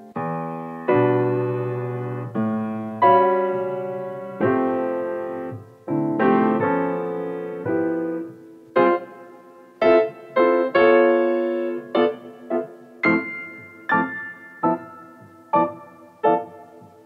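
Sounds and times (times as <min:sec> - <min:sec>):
slow gentle piano music: 0:00.0 - 0:17.0.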